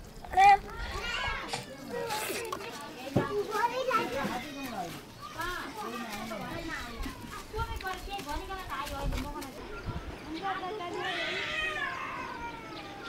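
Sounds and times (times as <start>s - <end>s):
child and adults talking: 0.3s - 13.0s.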